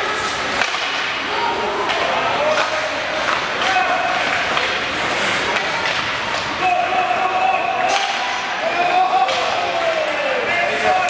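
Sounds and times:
spectators' voices in an arena: 0.0s - 11.0s.

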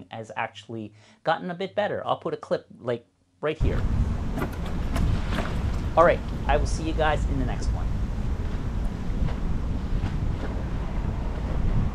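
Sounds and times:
wind buffeting microphone: 3.6s - 11.9s.

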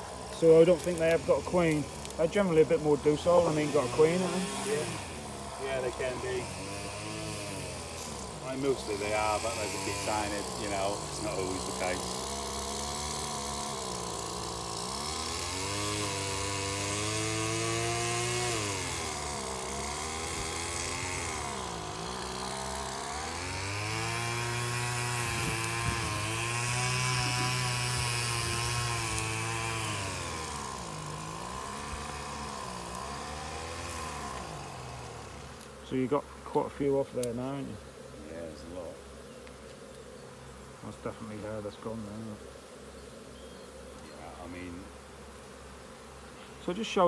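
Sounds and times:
small engine running: 0.0s - 36.2s
honeybees buzzing: 0.0s - 47.0s.

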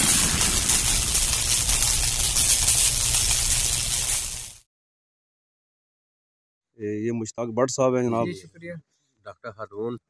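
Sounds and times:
rushing noise with hiss: 0.0s - 4.6s.

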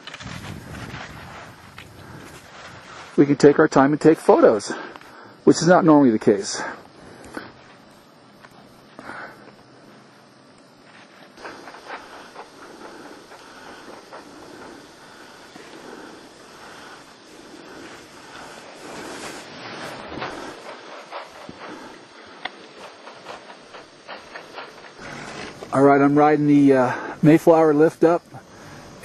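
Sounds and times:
skis swishing through snow: 0.0s - 3.6s, 10.8s - 25.6s.

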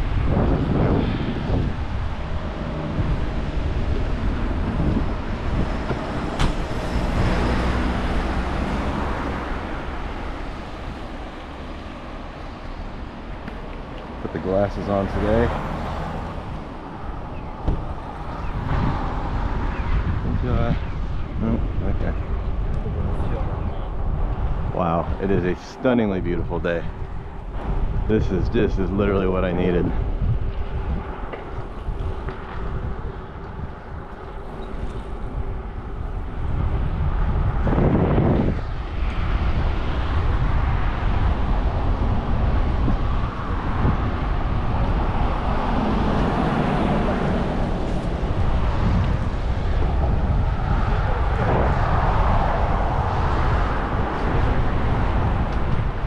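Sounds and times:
road traffic passing: 0.0s - 56.0s
wind rumbling on microphone: 0.0s - 56.0s.

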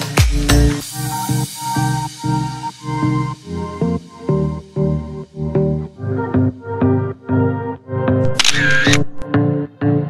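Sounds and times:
background music with steady beat: 0.0s - 10.0s
camera shutter sound effect: 8.2s - 9.3s.

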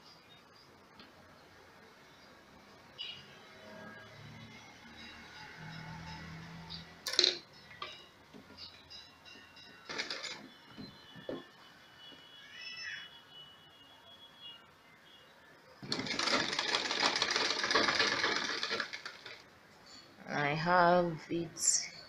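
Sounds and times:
handling noises: 9.7s - 11.6s, 15.8s - 19.5s
sewing machine stitching: 9.9s - 10.4s, 15.8s - 19.4s.

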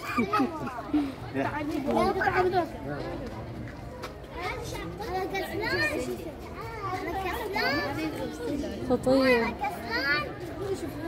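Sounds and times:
children talking and exclaiming: 0.0s - 11.0s.

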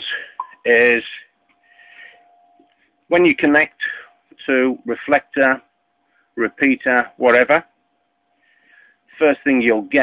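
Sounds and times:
faint steady whine: 0.0s - 10.0s
faint breath or sniff: 1.6s - 2.3s, 8.4s - 9.0s.

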